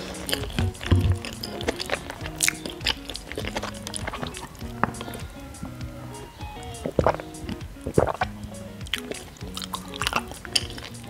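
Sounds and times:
background music with held notes: 0:00.0 - 0:11.0
close chewing mouth clicks: 0:00.2 - 0:05.2.

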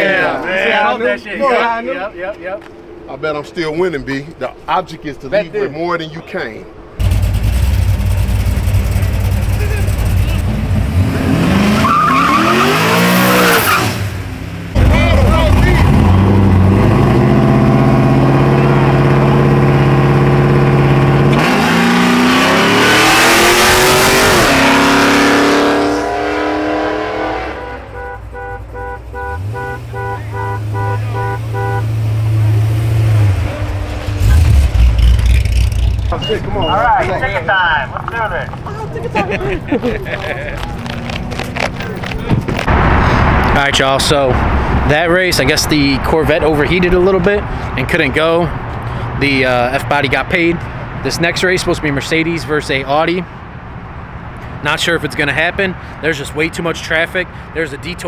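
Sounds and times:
car engines revving: 0:06.7 - 0:57.9.

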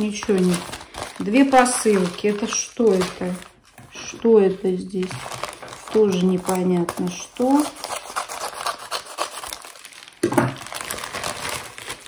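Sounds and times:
plastic mailer bag crinkling: 0:00.0 - 0:03.8, 0:04.7 - 0:12.0
bubble wrap rustling: 0:00.0 - 0:12.0
scissors cutting plastic: 0:05.0 - 0:12.0.

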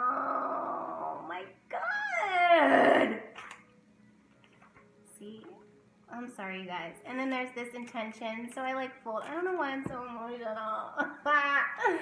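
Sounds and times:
woman crying and whimpering: 0:00.0 - 0:03.3, 0:11.7 - 0:12.0.

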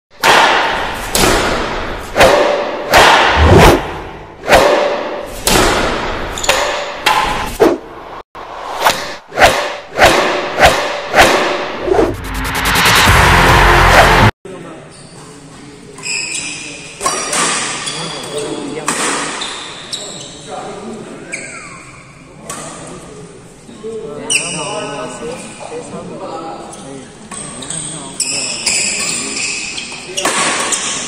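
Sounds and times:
heavy cinematic hits: 0:03.2 - 0:04.4, 0:11.2 - 0:14.3
dense swell: 0:03.3 - 0:04.4, 0:11.6 - 0:14.3.

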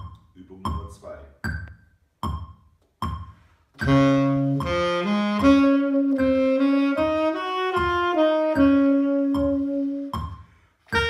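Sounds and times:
steady percussive tick: 0:00.0 - 0:05.6
tenor saxophone held notes: 0:03.8 - 0:11.0.

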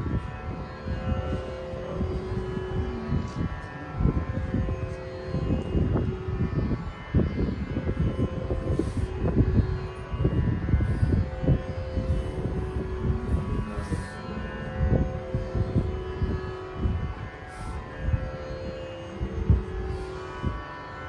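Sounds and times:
steady drone: 0:00.0 - 0:21.0.

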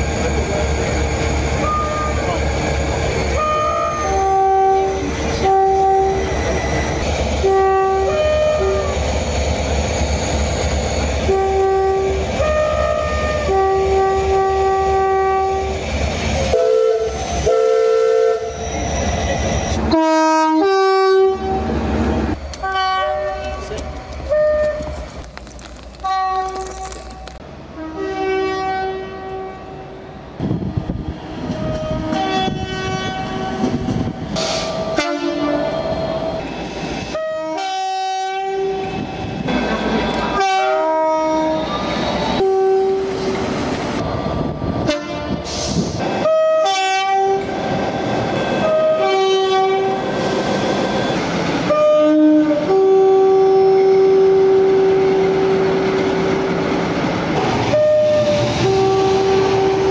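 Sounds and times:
two-tone locomotive horn blasts: 0:01.6 - 0:02.3, 0:03.4 - 0:06.4, 0:07.4 - 0:09.0, 0:11.2 - 0:15.7, 0:16.5 - 0:18.7, 0:19.9 - 0:21.7, 0:22.6 - 0:24.9, 0:26.0 - 0:26.8, 0:27.7 - 0:30.0, 0:31.5 - 0:33.8, 0:34.4 - 0:35.9, 0:37.1 - 0:39.1, 0:40.3 - 0:43.4, 0:44.8 - 0:45.6, 0:46.2 - 0:47.5, 0:48.4 - 0:50.1, 0:51.7 - 0:56.1, 0:57.7 - 0:59.9.

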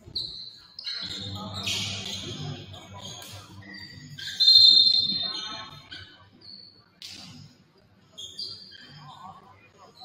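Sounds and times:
faint gym hall noise: 0:00.0 - 0:10.0.

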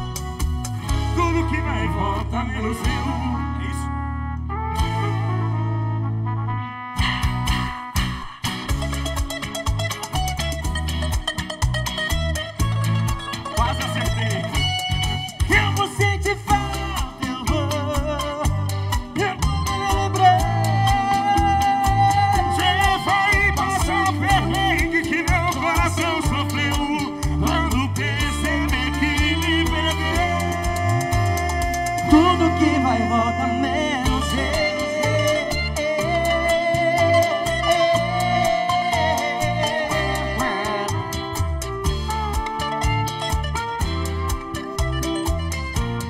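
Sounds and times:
accordion: 0:00.0 - 0:16.0, 0:16.7 - 0:46.0
acoustic guitar: 0:00.0 - 0:46.0
steady even beat: 0:07.2 - 0:36.3.

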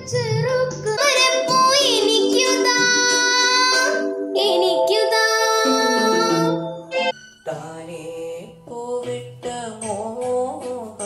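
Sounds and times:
boy singing: 0:00.0 - 0:06.6, 0:07.5 - 0:11.0.

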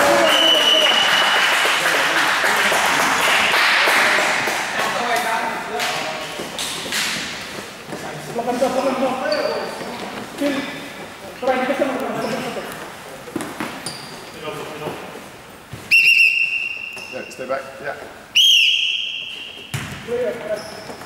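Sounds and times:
referee's whistle blasts: 0:00.1 - 0:01.4, 0:15.9 - 0:17.4, 0:18.3 - 0:19.7
ball knocking on hard court: 0:19.7 - 0:20.1.

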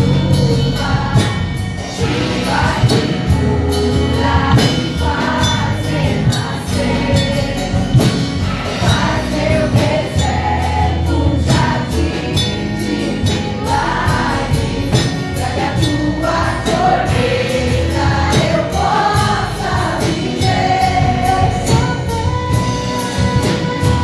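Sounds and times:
amplified accompaniment with bass: 0:00.0 - 0:24.0
women's choir singing gospel: 0:00.0 - 0:24.0.

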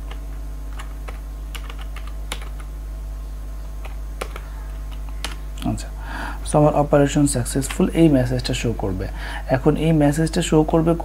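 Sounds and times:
keyboard keys clicking: 0:00.0 - 0:02.7, 0:03.8 - 0:05.7
steady low hum: 0:00.0 - 0:11.0.

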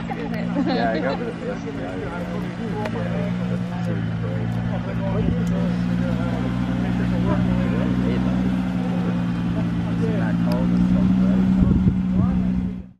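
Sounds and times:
car engine low drone: 0:00.0 - 0:12.9.

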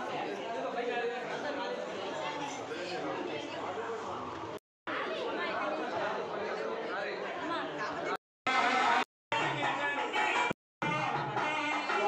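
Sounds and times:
crowd chatter indoors: 0:00.0 - 0:12.0.

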